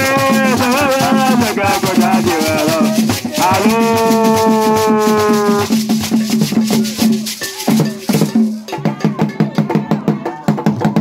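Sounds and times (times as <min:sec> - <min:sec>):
shaken rattles: 0:00.0 - 0:08.8
hand drums in dense rhythm: 0:00.0 - 0:11.0.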